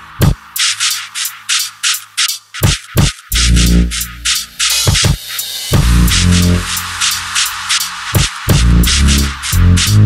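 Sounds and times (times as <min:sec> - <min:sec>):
hissy hi-hat-like hits: 0:00.0 - 0:10.0
kick drum hit: 0:02.6 - 0:03.2, 0:04.9 - 0:05.2, 0:05.8 - 0:06.3, 0:08.2 - 0:08.7.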